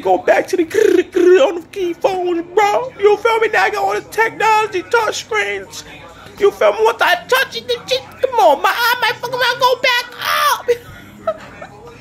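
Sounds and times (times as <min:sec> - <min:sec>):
man yelling: 0:06.4 - 0:10.8.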